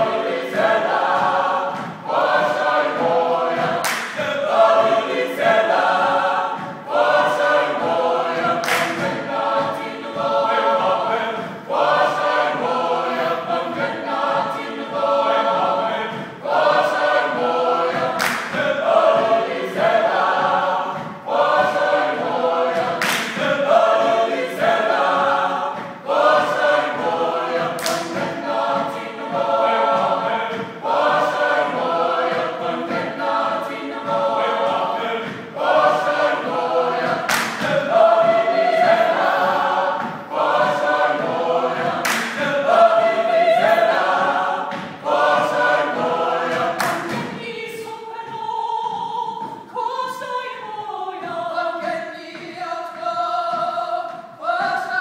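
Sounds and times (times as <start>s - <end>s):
a cappella choir singing: 0.0s - 55.0s
sharp claps or stomps: 0.1s - 50.3s.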